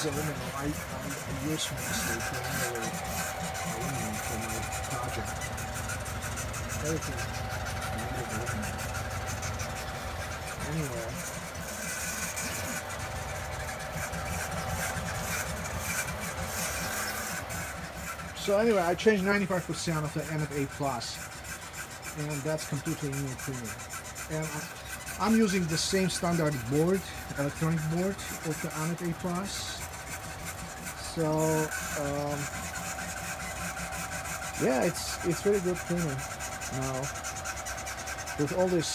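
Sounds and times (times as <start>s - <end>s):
fan hum: 0.0s - 38.9s
stepper motors moving: 0.0s - 38.9s.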